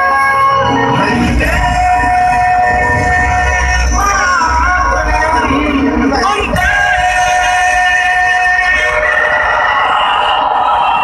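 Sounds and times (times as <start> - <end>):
loud music held chord: 0.0 - 10.6
bass and beat: 0.9 - 8.8.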